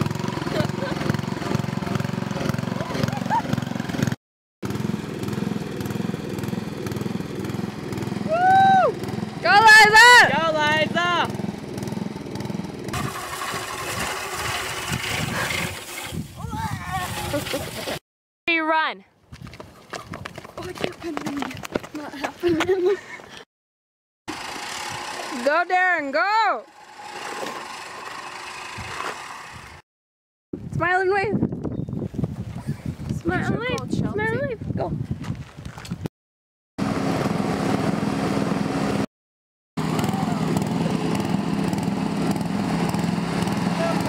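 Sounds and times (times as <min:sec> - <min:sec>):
lawn mower engine running: 0:00.0 - 0:16.3, 0:24.3 - 0:29.8, 0:36.8 - 0:39.1, 0:39.8 - 0:44.0.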